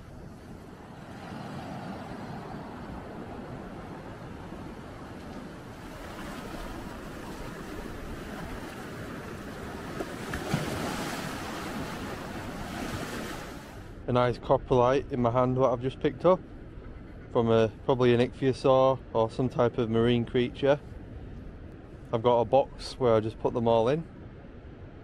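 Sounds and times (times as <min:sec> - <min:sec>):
surf washing over rocks: 0:00.0 - 0:13.9.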